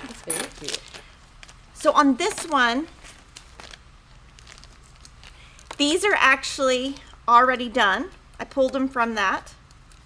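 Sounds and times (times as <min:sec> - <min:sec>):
plastic bag crinkling: 0:00.0 - 0:01.6, 0:02.3 - 0:06.0.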